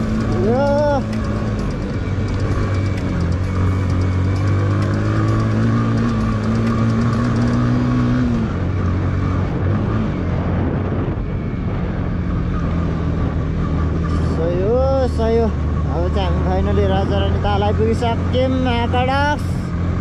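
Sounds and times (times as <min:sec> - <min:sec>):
motorcycle engine running: 0:00.0 - 0:20.0
road and wind noise: 0:00.0 - 0:20.0.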